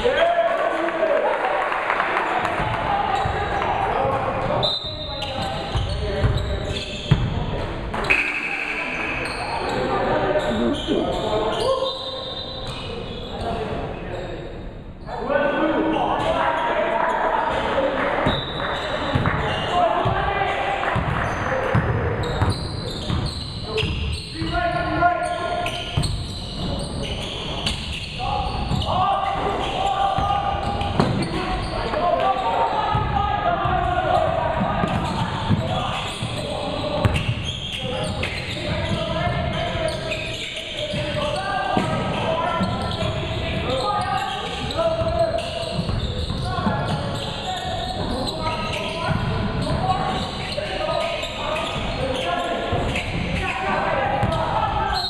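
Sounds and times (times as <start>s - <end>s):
people calling out: 8.0s - 12.1s.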